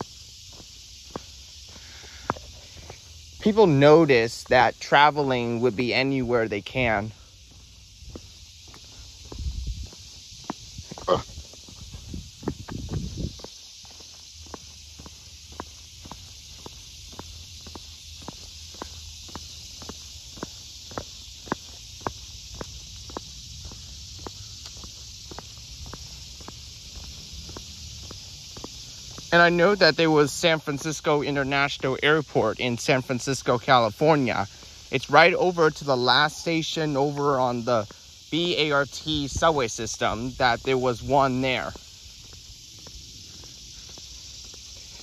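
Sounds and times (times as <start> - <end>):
footsteps on paved path: 0.0 - 45.0
steady high hiss: 0.0 - 45.0.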